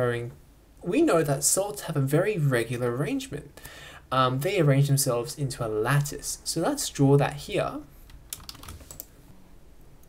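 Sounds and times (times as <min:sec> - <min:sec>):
computer keyboard clicks: 0:08.2 - 0:09.1.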